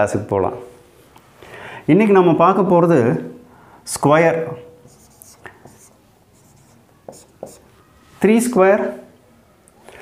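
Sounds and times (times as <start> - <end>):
marker scratching on whiteboard: 4.6 - 7.8.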